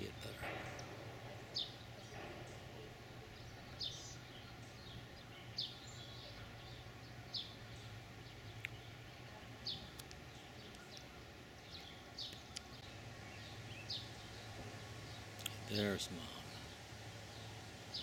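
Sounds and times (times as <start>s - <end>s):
bird chirping: 0.0s - 18.0s
faint low hum: 0.0s - 18.0s.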